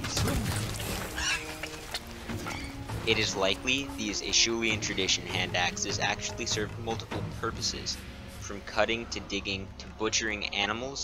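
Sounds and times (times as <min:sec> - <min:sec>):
background music with held notes: 0:00.0 - 0:11.0.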